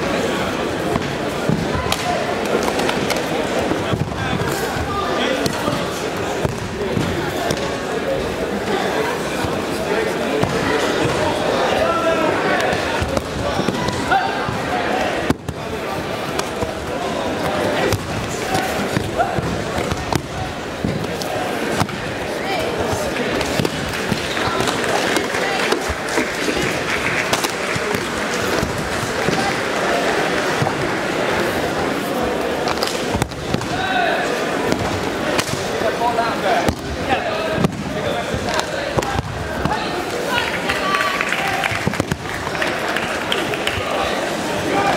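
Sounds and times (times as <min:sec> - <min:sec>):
voices echoing in a hall: 0:00.0 - 0:44.9.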